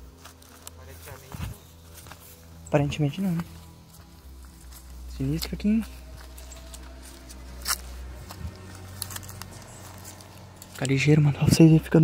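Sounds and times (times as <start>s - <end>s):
crackle underfoot: 0.0s - 12.0s
footsteps on grass: 0.0s - 12.0s
low droning background music: 0.0s - 12.0s.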